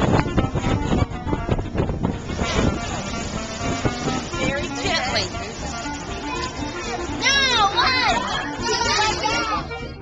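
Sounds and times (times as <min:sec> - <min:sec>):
background music: 0:00.0 - 0:10.0
young children chattering: 0:04.2 - 0:10.0
high swooping child voice: 0:06.1 - 0:09.8.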